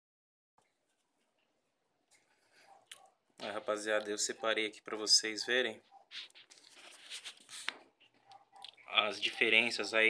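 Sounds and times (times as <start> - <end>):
faint scratchy rustling: 0.8 - 10.0.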